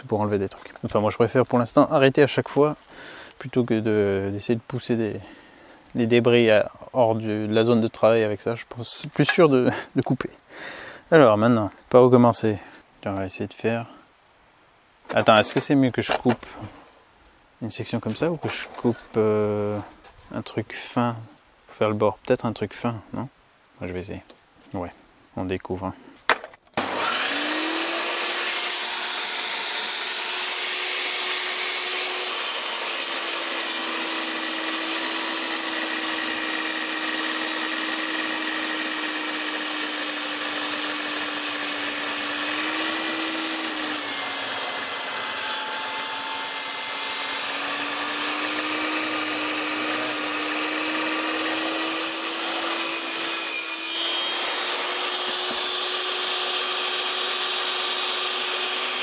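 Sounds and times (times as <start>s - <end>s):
saw blade cutting wood: 26.8s - 59.0s
table saw motor whining: 26.8s - 59.0s.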